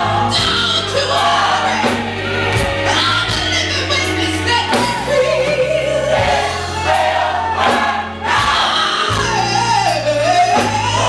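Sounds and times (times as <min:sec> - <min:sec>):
choir singing: 0:00.0 - 0:03.4, 0:04.5 - 0:11.0
bass line: 0:00.0 - 0:11.0.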